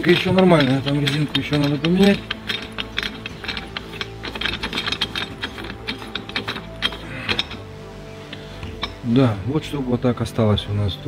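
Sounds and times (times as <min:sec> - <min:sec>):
threads rattling and clicking: 0:00.0 - 0:09.2.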